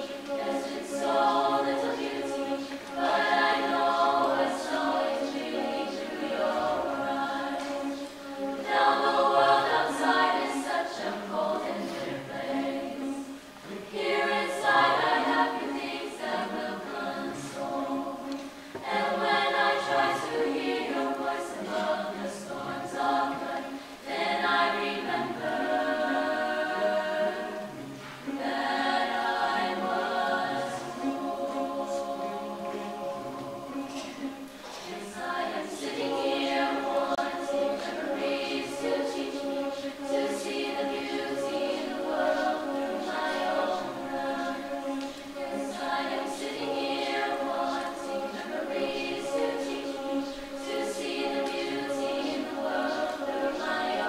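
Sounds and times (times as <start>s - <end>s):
mixed choir singing: 0.0s - 54.0s.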